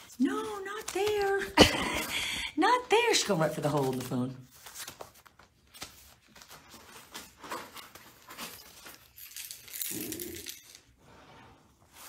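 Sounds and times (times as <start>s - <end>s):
newspaper rustling and crinkling: 0.0s - 9.4s.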